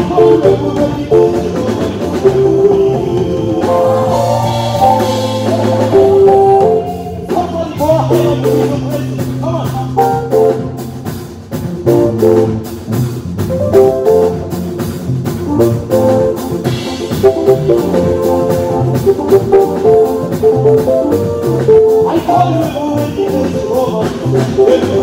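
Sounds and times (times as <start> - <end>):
bass line: 0.0 - 25.0
electric keyboard lead lines: 0.0 - 25.0
steady drums: 0.0 - 25.0.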